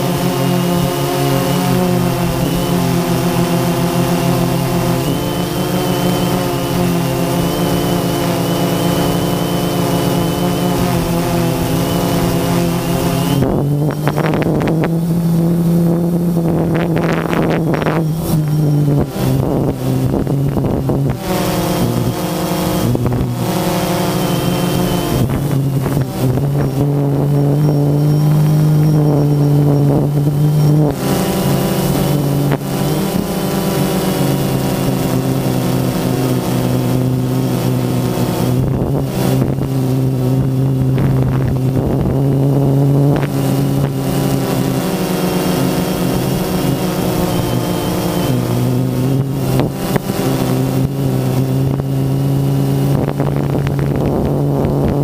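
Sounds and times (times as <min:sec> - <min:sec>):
drone propellers whining: 0:00.0 - 0:55.0.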